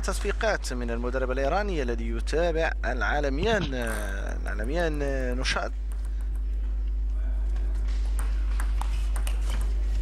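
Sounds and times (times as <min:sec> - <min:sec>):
steady low hum: 0:00.0 - 0:10.0
table tennis ball hits: 0:04.8 - 0:06.6, 0:08.0 - 0:09.8.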